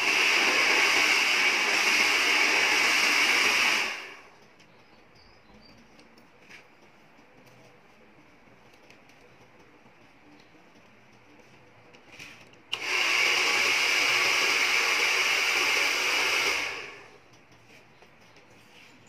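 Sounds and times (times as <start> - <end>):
hair dryer blowing: 0.0 - 4.3, 12.7 - 17.2.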